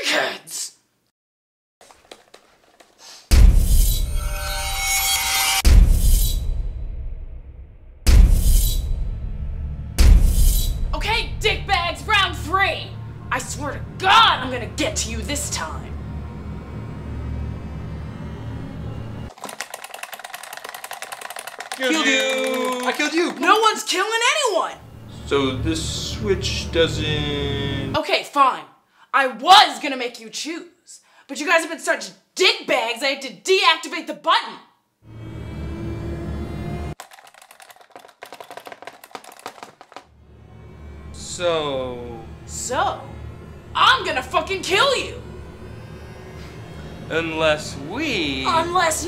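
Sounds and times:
low hum: 0:03.4 - 0:19.3, 0:40.8 - 0:48.8
ominous music drone: 0:11.8 - 0:19.3, 0:24.8 - 0:28.0, 0:35.1 - 0:37.0, 0:40.3 - 0:49.0.

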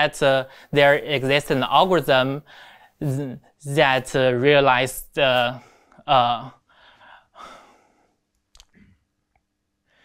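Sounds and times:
man breathing and sighing: 0:02.4 - 0:03.1, 0:05.5 - 0:08.9.

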